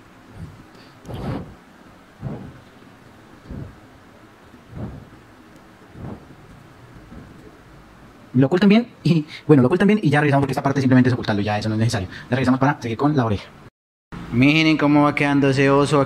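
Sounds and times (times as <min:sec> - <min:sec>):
yarn and mat rustling: 0:00.4 - 0:01.6.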